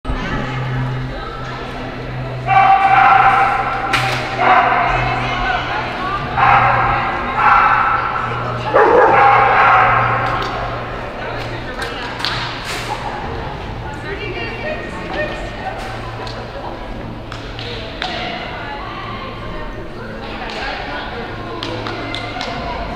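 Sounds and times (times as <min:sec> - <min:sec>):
dog barking: 0:02.5 - 0:05.2, 0:06.3 - 0:10.5.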